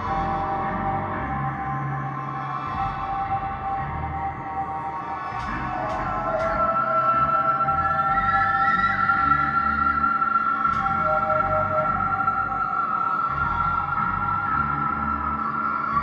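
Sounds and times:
ambient electronic drone music: 0:00.0 - 0:16.0.

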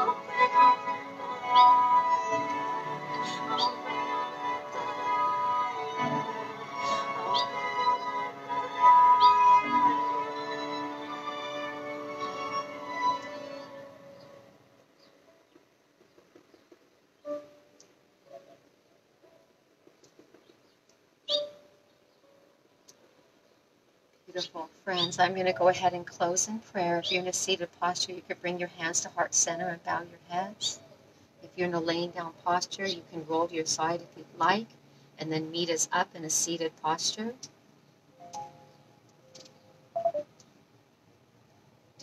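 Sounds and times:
sharp bird chirp: 0:39.4 - 0:40.3.

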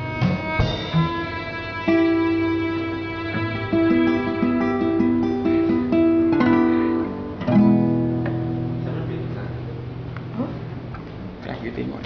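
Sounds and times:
bowed cello: 0:00.0 - 0:06.3
guitar: 0:00.0 - 0:12.0.

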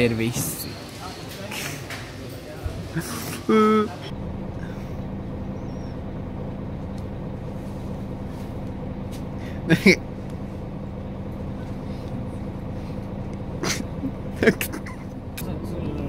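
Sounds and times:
bus engine hum: 0:00.0 - 0:16.0.

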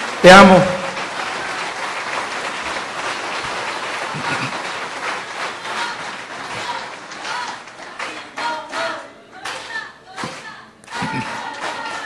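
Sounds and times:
audience applauding: 0:00.0 - 0:12.0.

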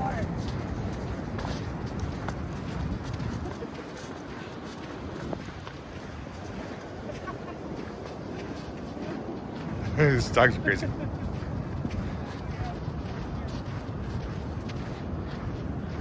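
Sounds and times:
wind: 0:00.0 - 0:16.0.

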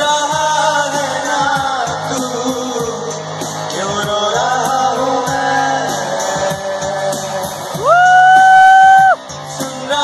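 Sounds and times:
live band music: 0:00.0 - 0:10.0
person singing: 0:00.0 - 0:10.0
high held whoop: 0:07.8 - 0:09.2.

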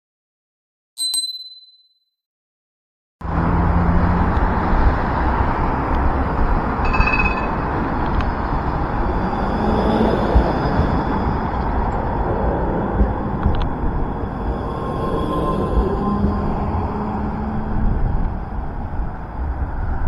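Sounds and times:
bell ding: 0:01.0 - 0:02.0, 0:06.8 - 0:07.7
street traffic: 0:03.2 - 0:20.0
tram rumbling past: 0:03.2 - 0:20.0.

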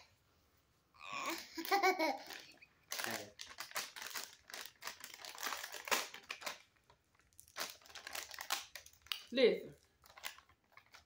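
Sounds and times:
plastic wrapper crinkling: 0:02.2 - 0:11.0.

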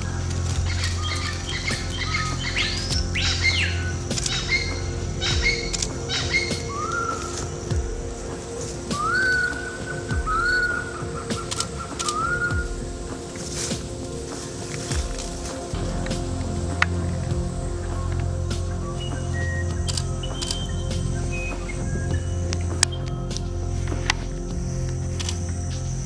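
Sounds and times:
birds whistling: 0:00.0 - 0:16.4, 0:17.5 - 0:24.4
soft background music: 0:00.0 - 0:26.0.

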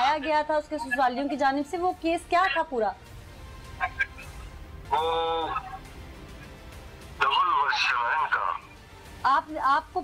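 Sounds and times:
background music: 0:00.0 - 0:10.0
man speaking through a phone: 0:07.2 - 0:08.8.

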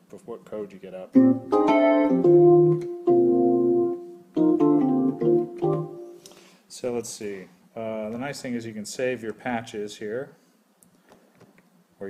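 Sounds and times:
electronic keyboard chords: 0:01.2 - 0:06.3.

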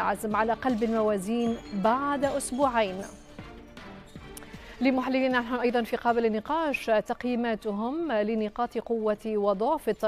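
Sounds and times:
woman speaking: 0:00.0 - 0:03.1, 0:04.8 - 0:10.0
quiet background music: 0:00.0 - 0:10.0.

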